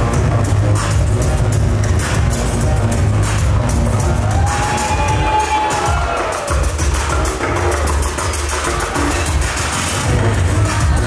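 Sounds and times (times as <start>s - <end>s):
electronic music with bass beat: 0.0s - 11.0s.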